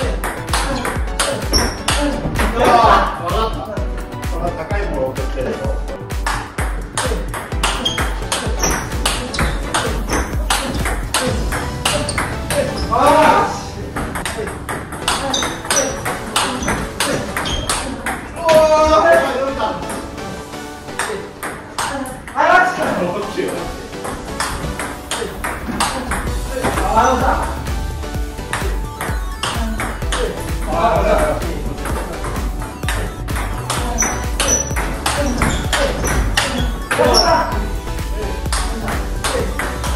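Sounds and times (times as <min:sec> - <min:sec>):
background music: 0:00.0 - 0:39.9
voices: 0:06.9 - 0:23.8, 0:25.0 - 0:27.7, 0:29.4 - 0:39.8.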